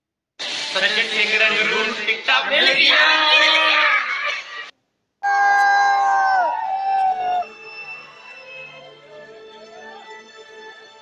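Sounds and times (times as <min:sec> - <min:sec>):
young men cheering: 0:05.2 - 0:07.6.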